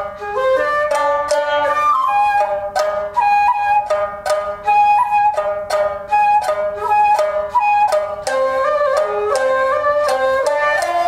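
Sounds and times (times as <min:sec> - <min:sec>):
bamboo flute sustained notes: 0:00.0 - 0:11.0
shamisen plucked: 0:00.0 - 0:11.0.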